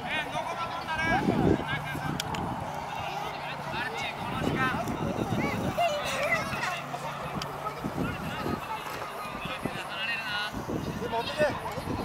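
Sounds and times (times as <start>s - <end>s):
children shouting: 5.3s - 9.8s.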